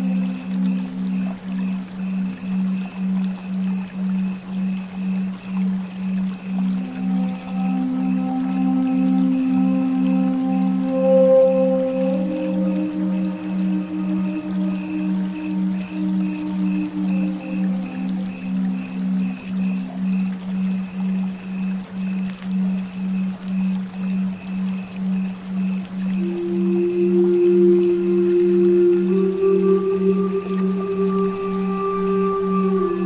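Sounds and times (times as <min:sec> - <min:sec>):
long held flute notes: 0:00.0 - 0:21.4, 0:25.5 - 0:33.0
pulsing low drone: 0:00.0 - 0:33.0.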